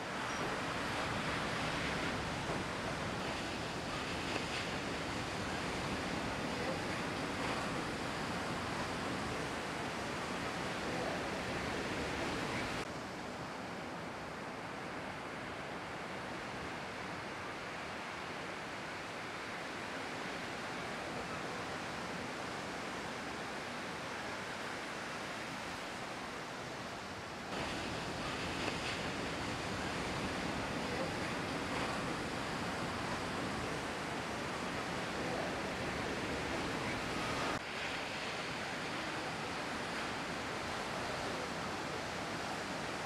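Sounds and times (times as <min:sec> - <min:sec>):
ocean waves breaking: 0:00.0 - 0:43.0.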